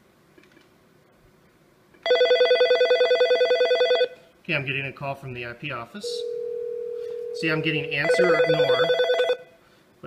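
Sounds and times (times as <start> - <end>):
desk phone ringing: 2.0 - 4.2, 6.0 - 9.5.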